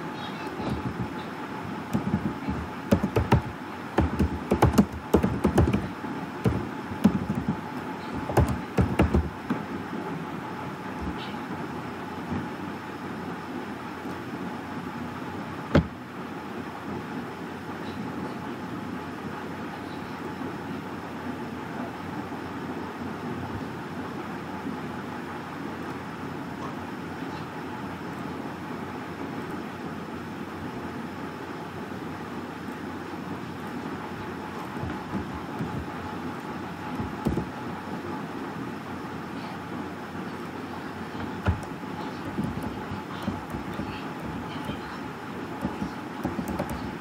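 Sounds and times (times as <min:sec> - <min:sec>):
faint hum: 0:00.0 - 0:47.0
soft knocks: 0:01.9 - 0:09.6, 0:11.0 - 0:11.3, 0:15.7 - 0:16.0, 0:34.6 - 0:36.1, 0:36.9 - 0:37.6, 0:41.2 - 0:44.9, 0:45.6 - 0:47.0.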